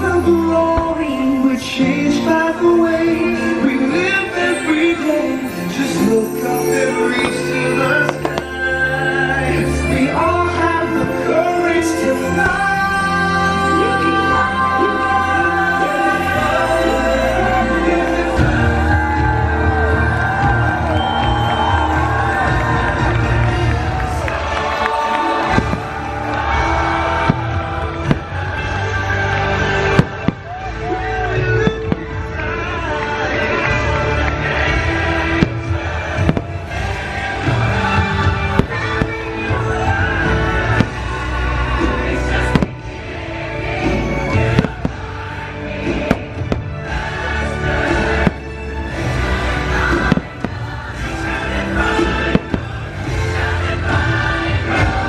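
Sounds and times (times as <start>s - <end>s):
loud show music: 0.0s - 55.0s
fireworks bangs: 7.2s - 8.7s, 24.0s - 30.8s, 31.4s - 33.1s, 34.8s - 54.0s.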